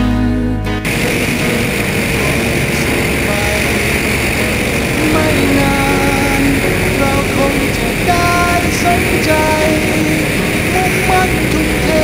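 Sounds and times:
propeller engine drone: 0.8 - 12.0.

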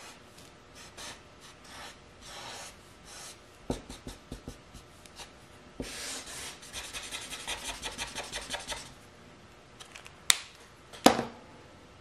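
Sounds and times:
marker strokes on paper: 0.8 - 4.6, 5.8 - 8.9.

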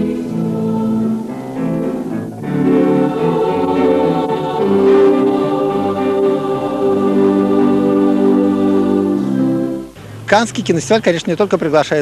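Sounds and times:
choir singing held chords: 0.0 - 10.6.

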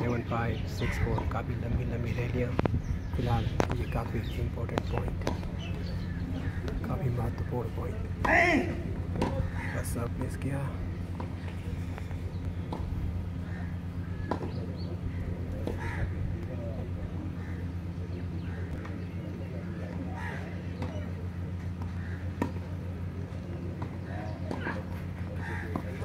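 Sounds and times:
steady low hum: 0.0 - 26.0
racket striking tennis ball: 9.1 - 9.5.

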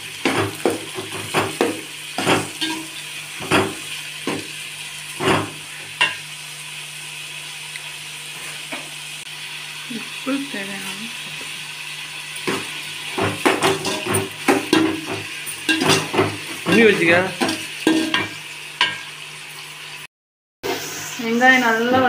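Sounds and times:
onions sizzling in oil: 0.0 - 22.0
metal spatula scraping a pot: 2.2 - 3.0, 13.4 - 19.1.

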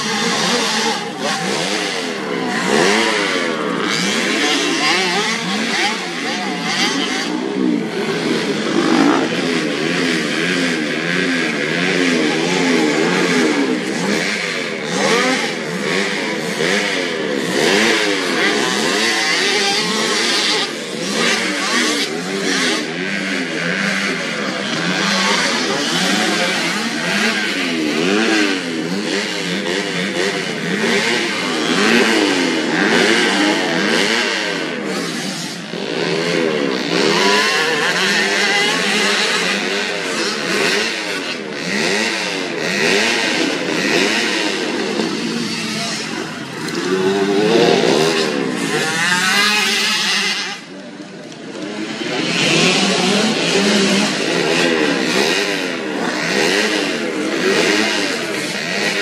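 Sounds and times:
motocross bike engines revving: 0.0 - 59.0.

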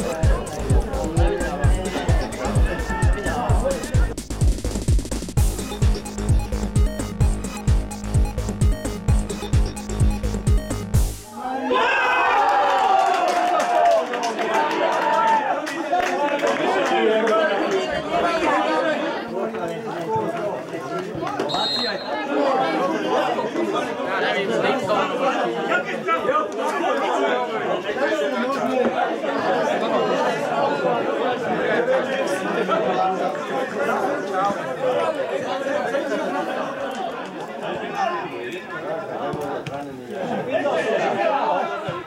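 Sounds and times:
people talking over one another: 0.0 - 12.0, 14.3 - 42.0
overlapping chatter of spectators: 0.0 - 42.0.

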